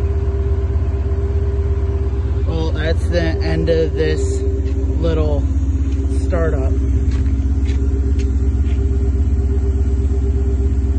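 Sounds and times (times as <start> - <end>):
vee eight engine idling: 0.0 - 10.9.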